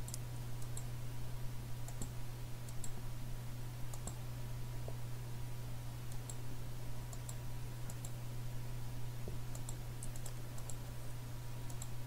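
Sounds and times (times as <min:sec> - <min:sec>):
computer mouse clicking: 0:00.0 - 0:00.9, 0:01.9 - 0:03.0, 0:03.9 - 0:04.2, 0:06.1 - 0:06.4, 0:07.1 - 0:08.2, 0:09.5 - 0:10.8, 0:11.7 - 0:12.0
steady low hum: 0:00.0 - 0:12.0.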